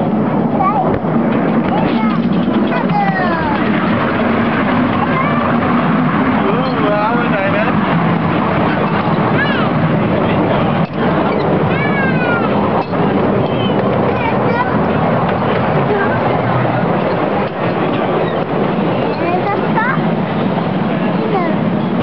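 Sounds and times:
miniature train rumbling: 0.0 - 22.0.

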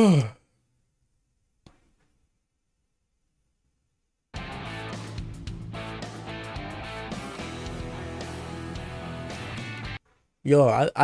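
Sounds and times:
man sighing: 0.0 - 0.6.

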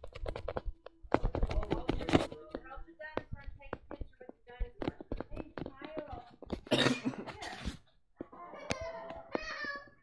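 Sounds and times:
person coughing: 6.6 - 7.5.

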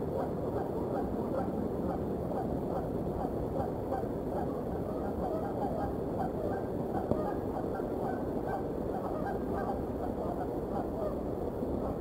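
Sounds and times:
geese honking: 8.0 - 11.1.

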